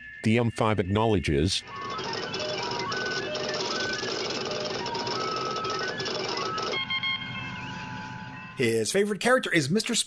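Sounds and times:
mechanical chatter: 1.6s - 7.0s
electronic hum with held tones: 1.6s - 8.6s.

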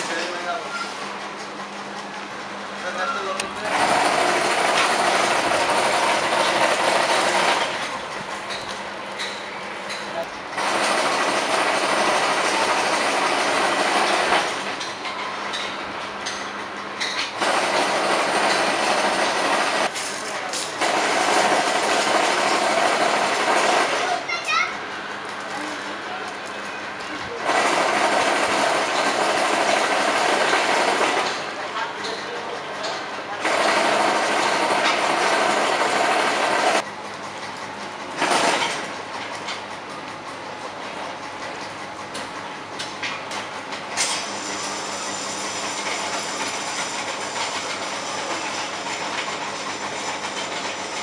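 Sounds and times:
mesh machine rattling whirr: 0.0s - 9.8s, 10.4s - 15.6s, 16.2s - 26.2s, 26.9s - 51.0s
workshop noise: 0.0s - 51.0s.

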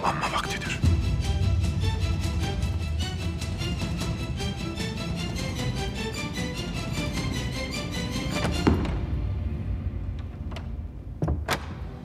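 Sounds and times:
dramatic pulsing music: 0.0s - 12.0s.

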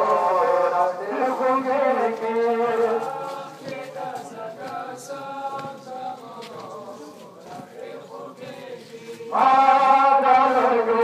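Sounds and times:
men's voices chanting: 0.0s - 11.0s.

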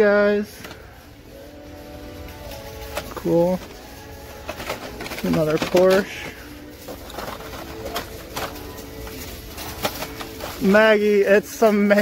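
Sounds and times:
plastic packages clicking: 2.3s - 12.0s.

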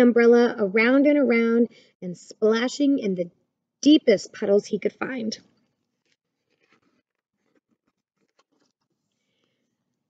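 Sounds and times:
paper page turning: 5.9s - 9.1s.

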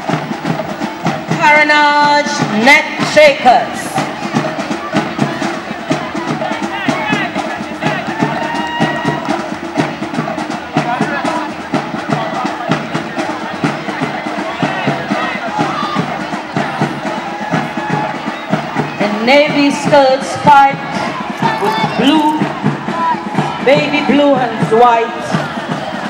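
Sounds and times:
crowd chatter and calls: 0.0s - 26.0s
drums playing quick beats: 0.0s - 26.0s.

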